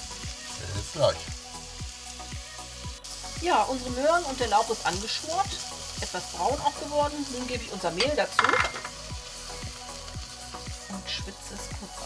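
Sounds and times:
vegetables sizzling in butter: 0.0s - 12.0s.

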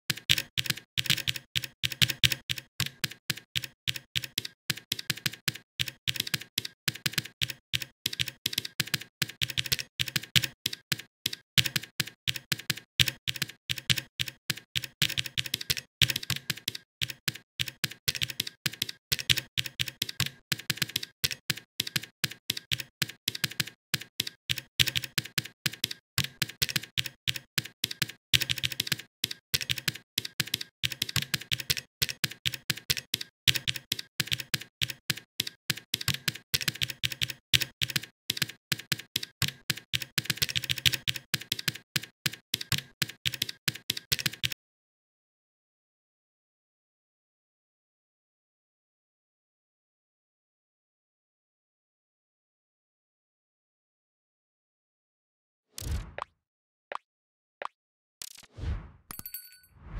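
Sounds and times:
typing on computer keyboard: 0.1s - 44.6s.

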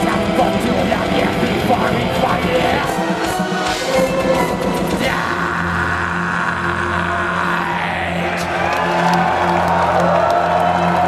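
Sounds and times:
live metal band playing: 0.0s - 9.7s.

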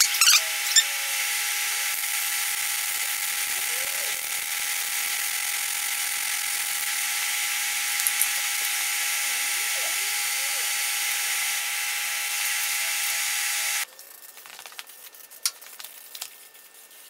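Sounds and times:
space heater whirring: 0.0s - 13.9s.

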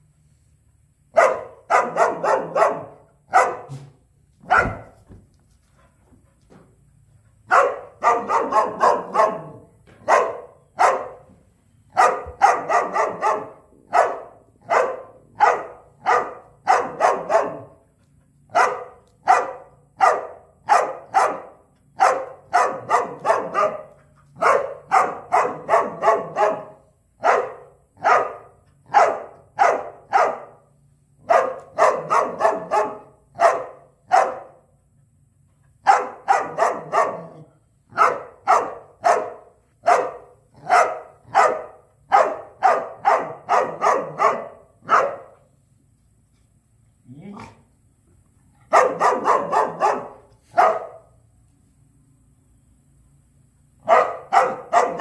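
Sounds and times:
dog barking: 1.1s - 5.1s, 7.5s - 11.3s, 11.9s - 17.8s, 18.5s - 34.7s, 35.8s - 45.5s, 48.7s - 51.2s, 53.8s - 55.0s.

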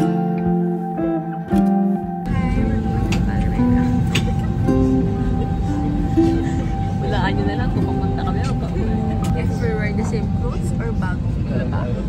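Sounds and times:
background music: 0.0s - 12.0s
airliner cabin drone: 1.9s - 12.0s
women's voices: 2.2s - 12.0s.

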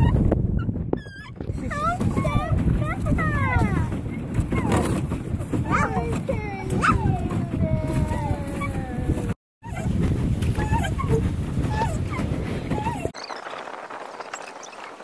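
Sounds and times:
wind rumble on microphone: 0.0s - 15.0s
child making sliding calls: 5.7s - 9.3s.

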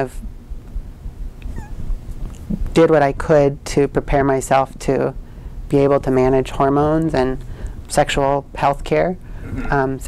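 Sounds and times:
low uneven rumble: 8.8s - 10.0s.

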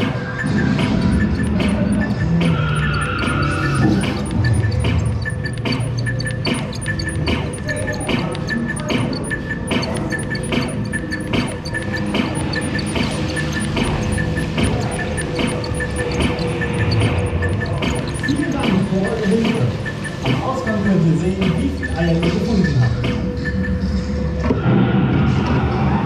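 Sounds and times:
pulsing soundtrack music: 0.0s - 26.0s
recorded voice announcement: 17.7s - 23.2s.

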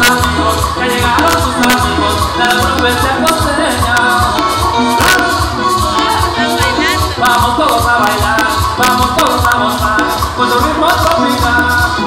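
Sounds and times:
latin dance band music: 0.0s - 12.0s.

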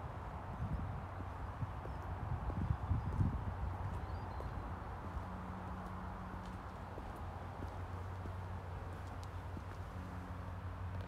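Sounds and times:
footsteps on brick paving: 1.2s - 10.2s.

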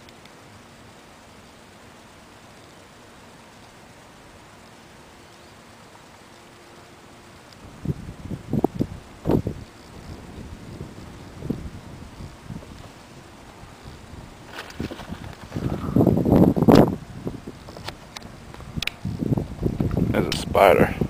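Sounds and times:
faint steady hiss: 0.0s - 21.0s
wind buffeting microphone: 7.6s - 21.0s.

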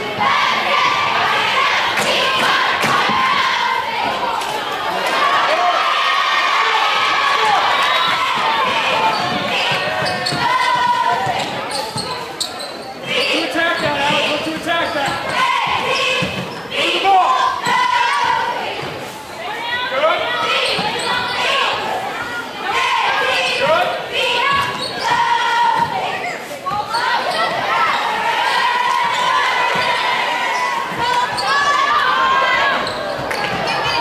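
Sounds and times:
voices calling and shouting: 0.0s - 34.0s.

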